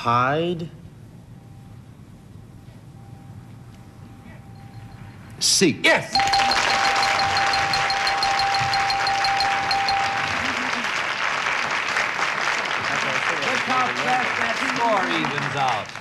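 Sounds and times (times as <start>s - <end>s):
steady electronic tone: 6.2s - 10.8s
audience applauding: 6.2s - 16.0s.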